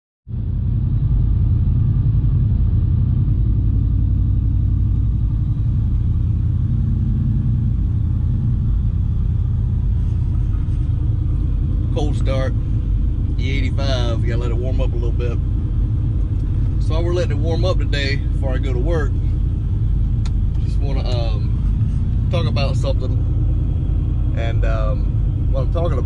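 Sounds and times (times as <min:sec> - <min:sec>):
car engine idling: 0:00.3 - 0:26.0.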